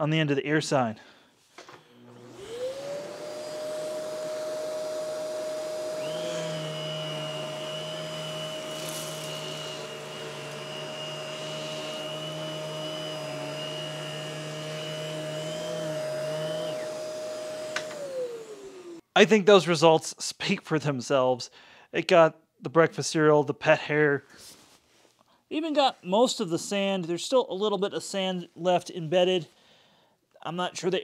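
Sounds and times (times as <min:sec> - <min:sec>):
power nozzle brush motor whine: 0:01.7 - 0:19.0
vacuum cleaner motor whine: 0:01.7 - 0:19.0.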